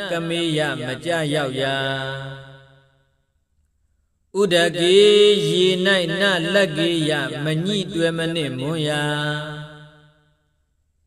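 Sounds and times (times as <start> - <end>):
man chanting: 0.0 - 2.9, 4.4 - 10.0.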